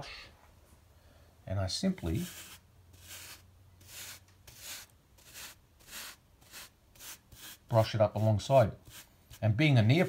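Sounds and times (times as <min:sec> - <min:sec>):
paintbrush sweeping grit: 0:01.9 - 0:10.0.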